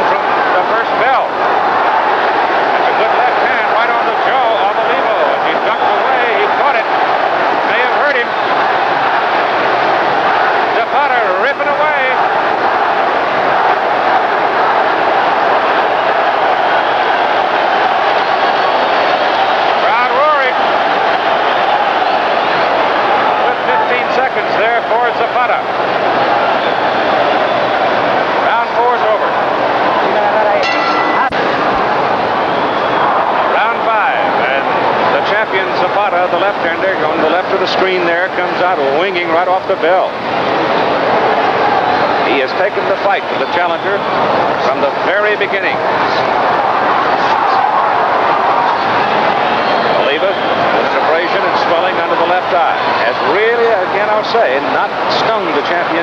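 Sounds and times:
crowd shouting: 0.0s - 56.0s
whistles: 49.5s - 50.8s.

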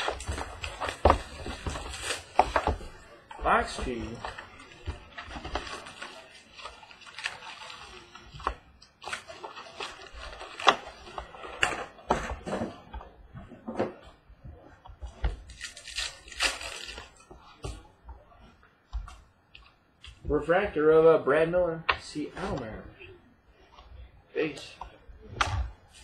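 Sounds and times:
foil packs crinkling: 0.0s - 12.0s, 15.5s - 17.2s.

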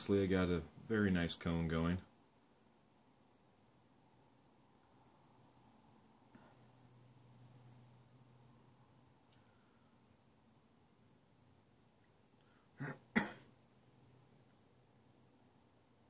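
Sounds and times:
man clearing his throat: 12.8s - 13.5s.

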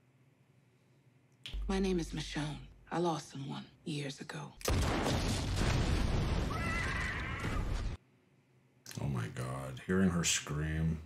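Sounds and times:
woman screaming: 6.5s - 7.7s.

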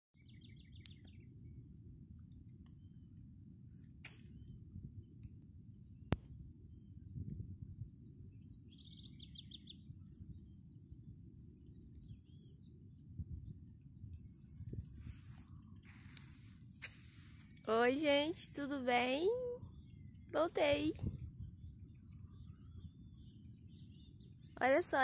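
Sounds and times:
insects droning: 0.2s - 25.0s
wind rumble on microphone: 0.2s - 25.0s.

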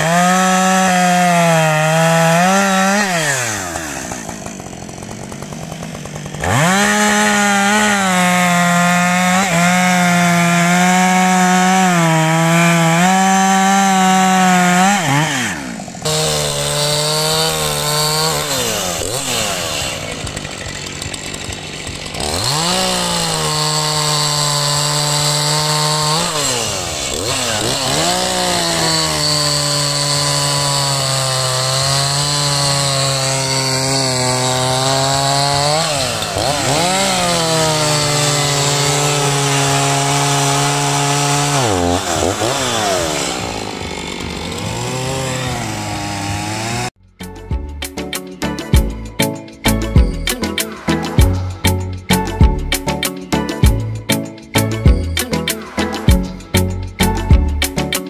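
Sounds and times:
chainsaw cutting logs: 0.0s - 58.0s.

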